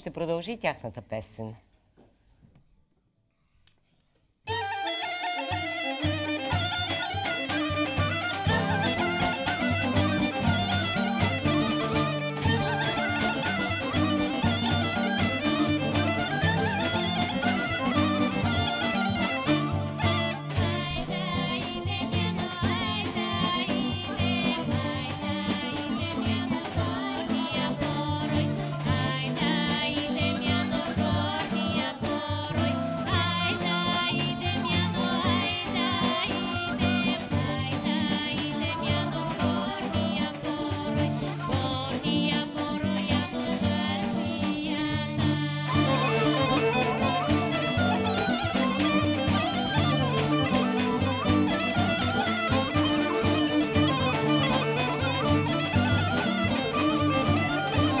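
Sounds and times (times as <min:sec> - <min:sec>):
folk band with clarinet: 0:04.5 - 0:58.0
girl and woman singing folk song: 0:05.9 - 0:58.0.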